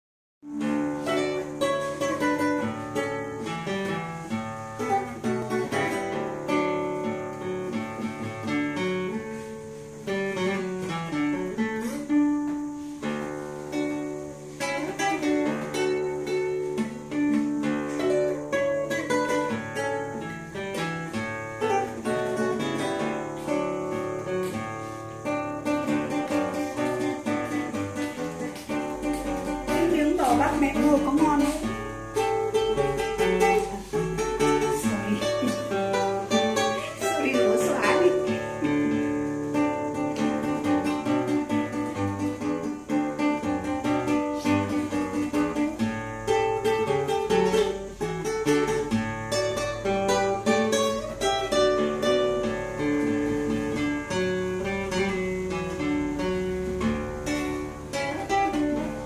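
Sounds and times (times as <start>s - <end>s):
fingerstyle classical guitar: 0.4s - 59.0s.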